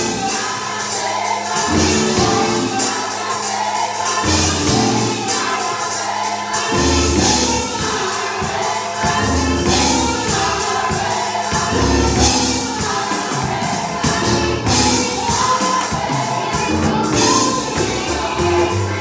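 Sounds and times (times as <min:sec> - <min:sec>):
band accompaniment: 0:00.0 - 0:19.0
gospel choir singing: 0:00.0 - 0:19.0.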